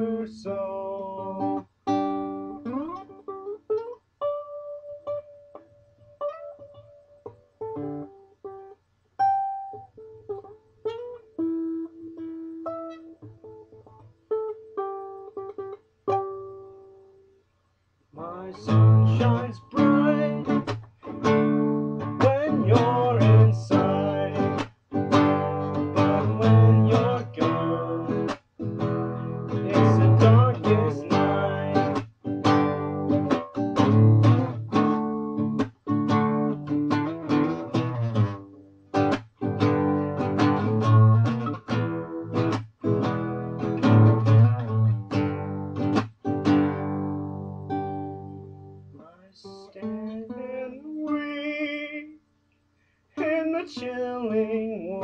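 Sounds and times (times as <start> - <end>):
classical guitar strumming: 0.0 - 17.4, 18.2 - 52.2, 53.2 - 55.0.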